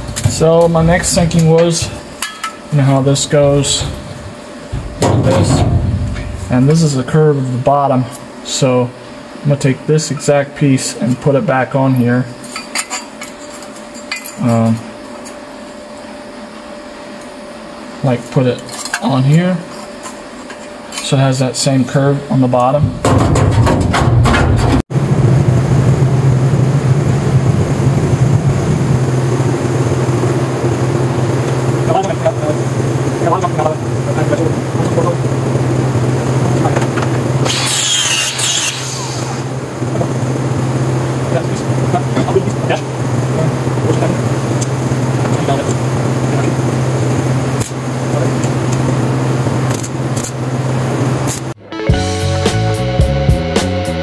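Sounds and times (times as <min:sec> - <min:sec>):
angle grinder motor hum: 0:33.8 - 0:51.5
high-pitched grinding on metal: 0:37.4 - 0:39.5.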